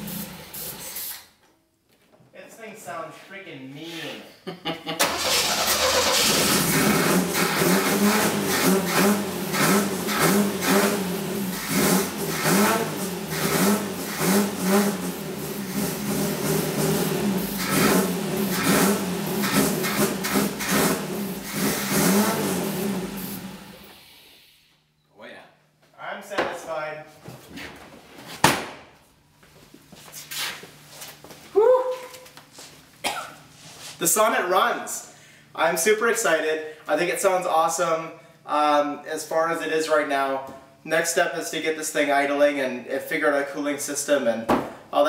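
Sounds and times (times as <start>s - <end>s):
short voice sounds: 31.5s - 32.3s.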